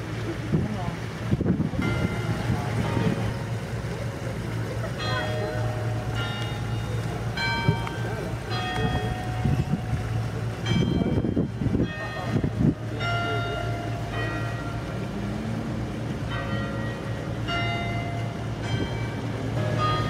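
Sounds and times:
church bells ringing: 0:01.7 - 0:20.0.

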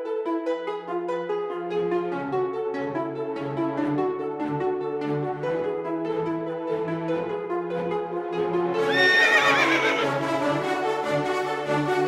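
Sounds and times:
background music: 0:00.0 - 0:12.0
horse whinnying: 0:08.8 - 0:10.2.

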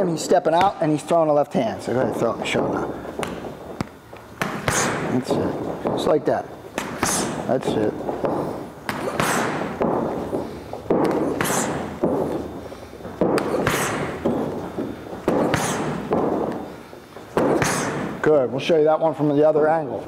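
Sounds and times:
boxing gloves smacking pads: 0:02.0 - 0:18.4.

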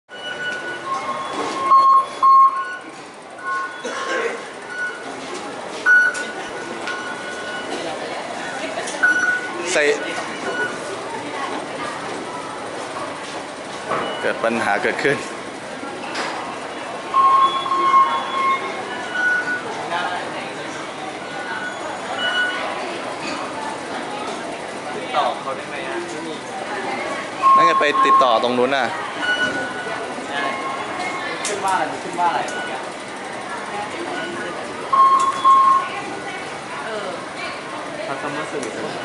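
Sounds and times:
card readers beeping: 0:00.1 - 0:03.9, 0:04.6 - 0:05.2, 0:05.8 - 0:07.8, 0:08.9 - 0:10.9, 0:17.0 - 0:19.8, 0:27.4 - 0:31.5, 0:32.1 - 0:32.9, 0:33.9 - 0:36.1
murmur of voices: 0:00.1 - 0:39.0
station rumble: 0:00.1 - 0:39.0.

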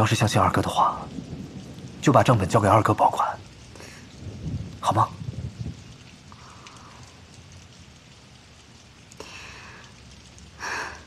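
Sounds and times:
rain-like hiss: 0:00.0 - 0:11.0.

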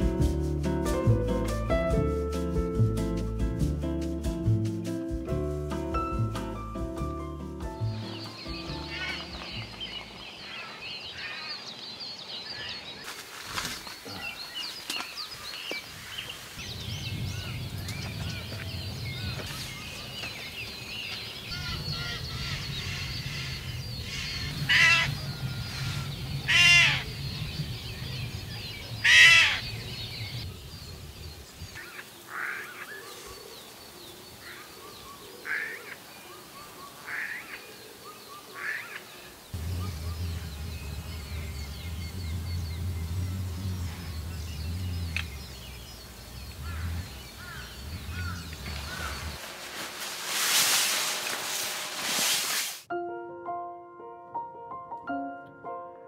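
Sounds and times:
birds calling and singing: 0:07.2 - 0:52.3
bird harsh calls: 0:07.8 - 0:13.1, 0:14.0 - 0:30.4, 0:31.7 - 0:51.9
low steady hum: 0:39.6 - 0:49.9.

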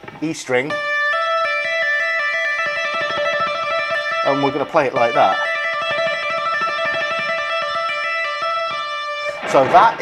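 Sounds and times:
electric guitar trill: 0:00.0 - 0:10.0.

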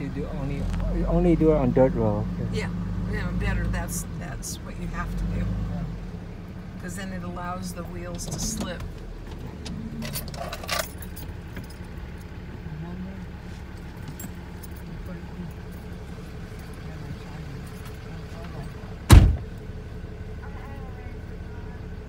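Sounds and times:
truck driving on dirt road: 0:00.0 - 0:22.0
metallic clinks and rattles: 0:09.9 - 0:12.4.

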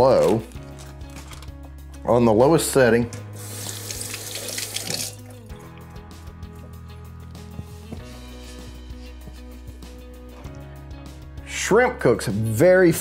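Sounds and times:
faucet running into sink: 0:03.4 - 0:05.4.

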